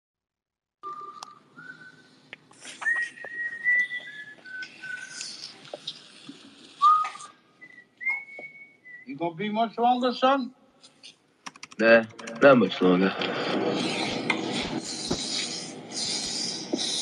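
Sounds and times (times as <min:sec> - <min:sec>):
person whistling: 0:00.8 - 0:05.5, 0:06.8 - 0:09.2
sharp clicks: 0:11.4 - 0:12.5.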